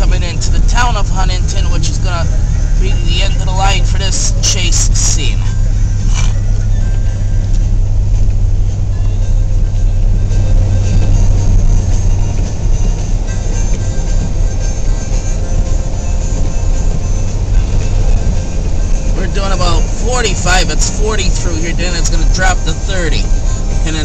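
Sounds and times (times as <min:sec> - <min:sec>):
car engine and tyre rumble: 0:00.0 - 0:24.0.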